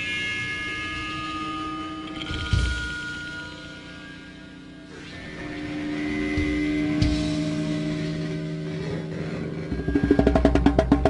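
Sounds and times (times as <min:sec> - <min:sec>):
amplifier hum of held tones: 0:00.0 - 0:11.0.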